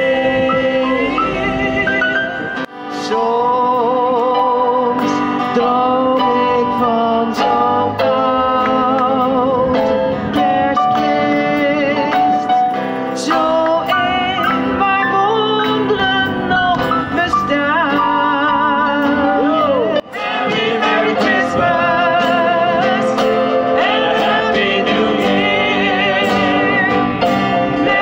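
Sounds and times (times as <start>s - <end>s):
voices singing a carol: 0.0s - 9.7s, 19.4s - 28.0s
keyboard: 0.0s - 28.0s.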